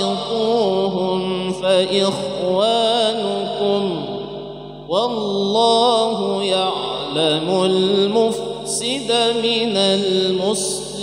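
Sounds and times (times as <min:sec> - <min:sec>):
man reciting in melodic chant: 0:00.0 - 0:11.0.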